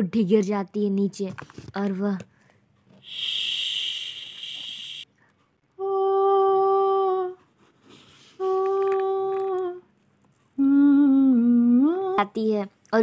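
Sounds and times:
woman humming long notes: 0:10.6 - 0:12.2.

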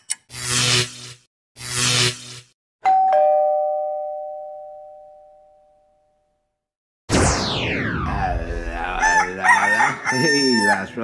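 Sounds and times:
two-note doorbell chime: 0:02.8 - 0:06.4.

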